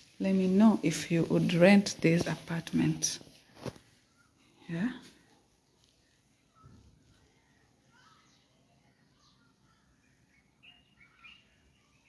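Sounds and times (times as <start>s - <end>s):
bird chirps: 6.0s - 12.0s.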